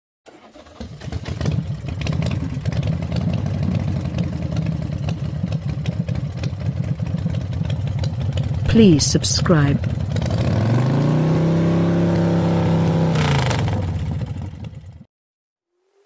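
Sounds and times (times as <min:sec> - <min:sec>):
vehicle engine starting and idling: 0:00.3 - 0:15.1.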